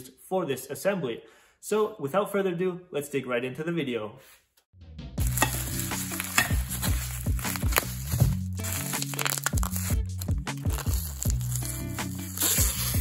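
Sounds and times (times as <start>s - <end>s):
background music with bass and beat: 4.8s - 13.0s.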